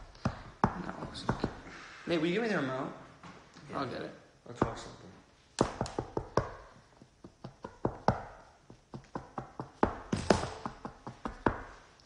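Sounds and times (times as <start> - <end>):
fingers tapping on countertop: 5.6 - 11.8.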